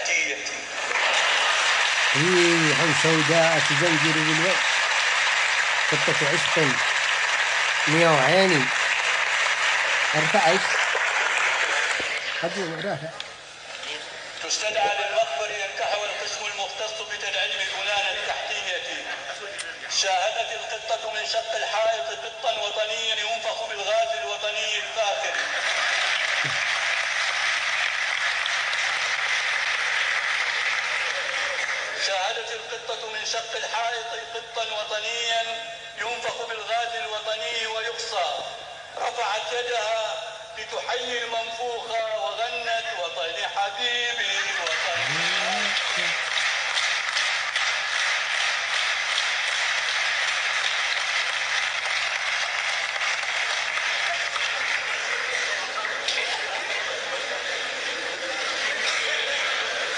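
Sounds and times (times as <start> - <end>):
audience applauding: 0.8 - 13.0, 25.2 - 32.2, 44.6 - 59.9.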